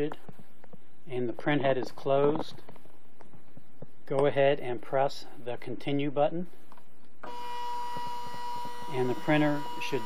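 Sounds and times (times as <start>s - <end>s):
label printer feed motor whine: 7.2s - 10.0s.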